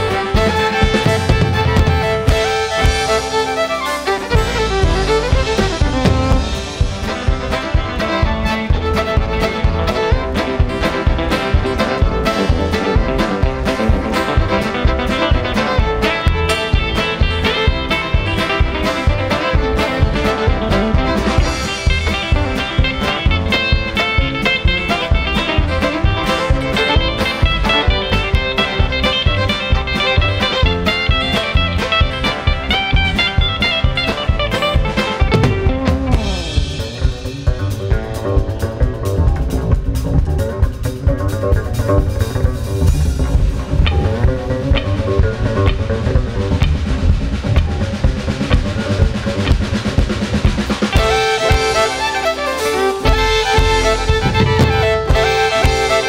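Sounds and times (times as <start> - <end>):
drums and bass: 0.0 - 56.0
fiddle bowed notes: 0.0 - 56.0
live band playing: 0.0 - 56.0.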